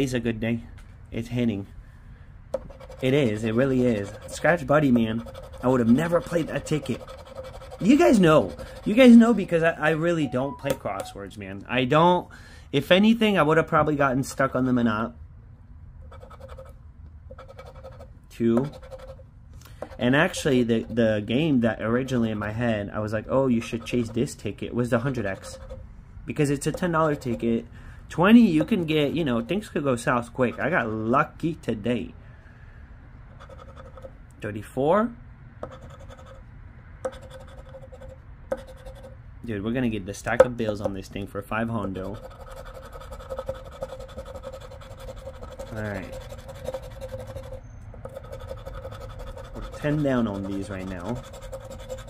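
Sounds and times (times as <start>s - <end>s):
scratch-off ticket scraping: 2.8s - 9.5s, 41.8s - 52.0s.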